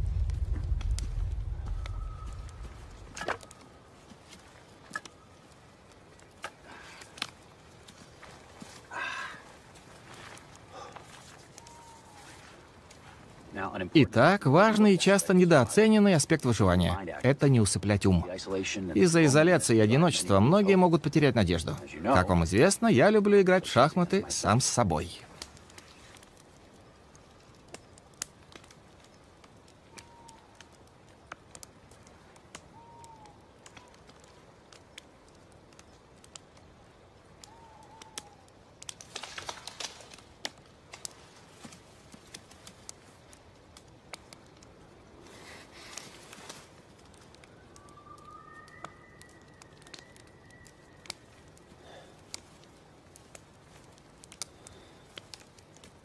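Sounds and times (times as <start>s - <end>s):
campfire crackling and popping: 0.0s - 56.0s
rustling and handling: 45.2s - 47.4s.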